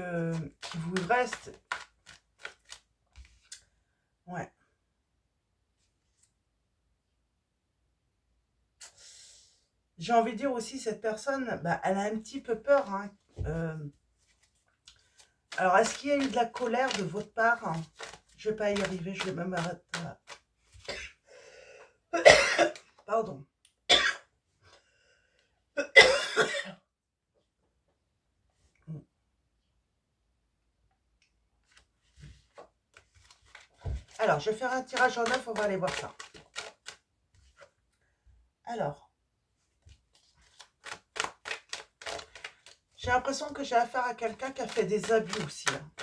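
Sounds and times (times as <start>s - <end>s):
woman speaking: 0.0s - 1.6s, 10.0s - 14.0s, 15.5s - 20.2s, 34.2s - 36.2s, 38.7s - 39.1s, 43.0s - 46.0s
cards being shuffled by hand: 0.0s - 3.8s, 12.6s - 21.1s, 31.6s - 37.9s, 39.7s - 46.0s
woman coughing hard: 22.2s - 22.8s, 23.9s - 24.3s, 25.8s - 26.8s.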